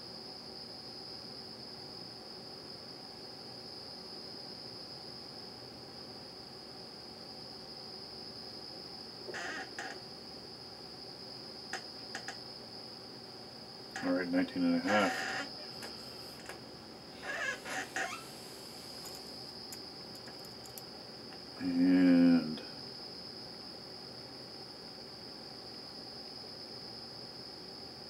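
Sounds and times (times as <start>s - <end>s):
faint high-pitched whine: 0.0s - 28.0s
faint clicks: 19.0s - 20.9s.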